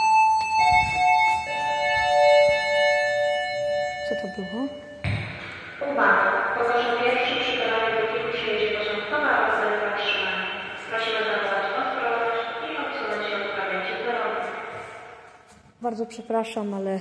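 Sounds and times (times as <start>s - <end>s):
echoing loudspeaker announcement: 0.0s - 15.3s.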